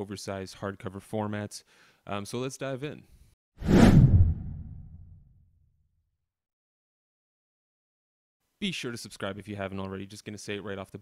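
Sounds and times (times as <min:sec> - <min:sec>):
whoosh sweeping into low rumble: 0:03.6 - 0:05.4.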